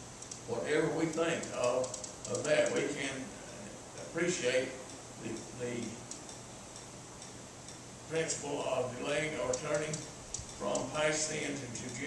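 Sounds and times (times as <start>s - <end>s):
low steady hiss: 0.0s - 12.0s.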